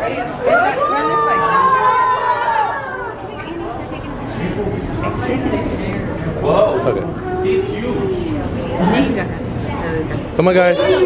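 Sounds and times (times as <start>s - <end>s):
murmur of people chatting: 0.0s - 11.0s.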